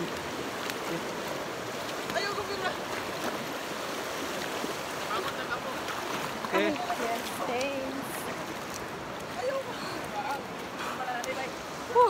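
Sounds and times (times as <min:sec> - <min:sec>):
river flowing over rocks: 0:00.0 - 0:12.0.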